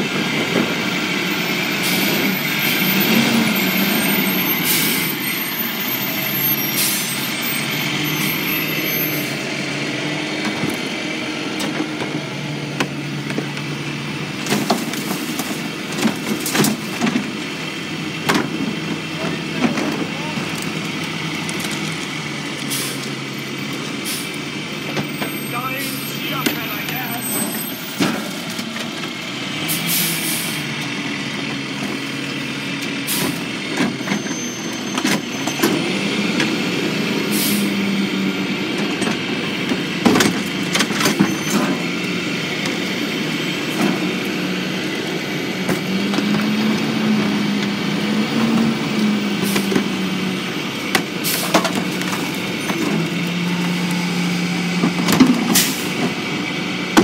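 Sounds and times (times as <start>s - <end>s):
truck engine revving: 0.0s - 57.0s
garbage carts banging and clattering: 11.5s - 22.1s, 24.8s - 29.1s, 38.6s - 57.0s.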